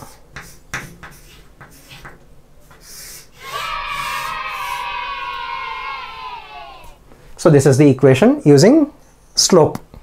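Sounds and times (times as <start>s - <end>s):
chalk squeaking on chalkboard: 0.4s - 2.2s.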